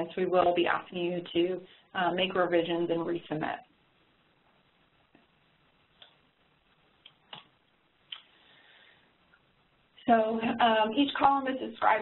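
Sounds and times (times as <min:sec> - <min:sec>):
faint hiss: 0:03.4 - 0:12.0.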